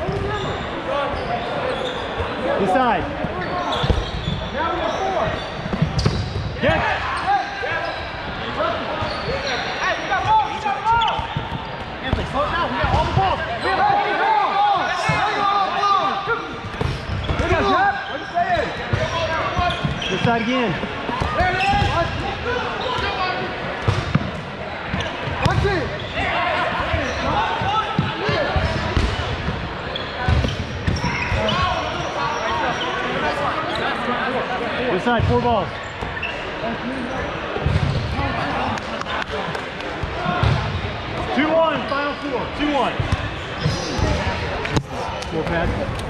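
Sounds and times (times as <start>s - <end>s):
players shouting: 12.0s - 23.6s.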